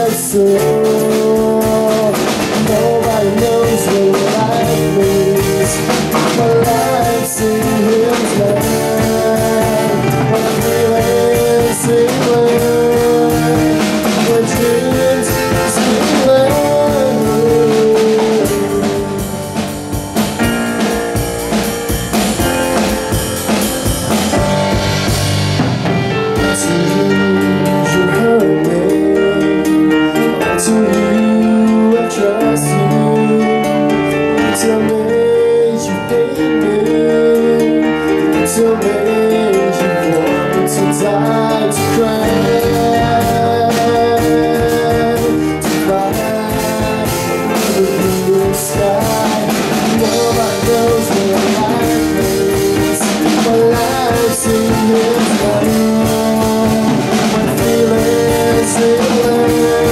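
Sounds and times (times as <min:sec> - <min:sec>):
drum kit: 0:00.0 - 0:59.9
electric guitars: 0:00.0 - 0:59.9
keyboard: 0:00.0 - 0:59.9
person singing: 0:00.0 - 0:59.9
sliding melody line: 0:00.0 - 0:59.9
stage piano: 0:00.0 - 0:59.9.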